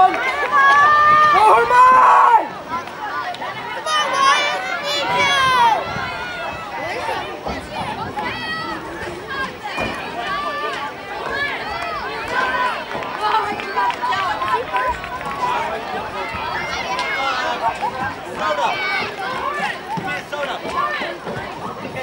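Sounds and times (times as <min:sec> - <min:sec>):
crowd of spectators talking: 0:00.0 - 0:22.0.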